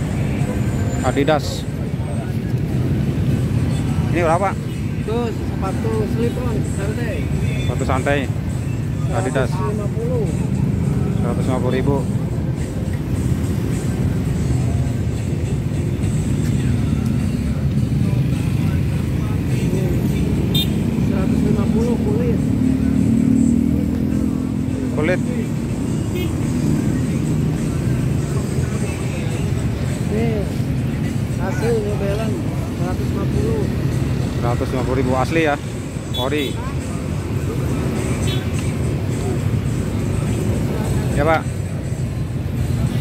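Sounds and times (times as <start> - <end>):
road traffic rumble: 0.0 - 43.0
scattered voices: 0.0 - 43.0.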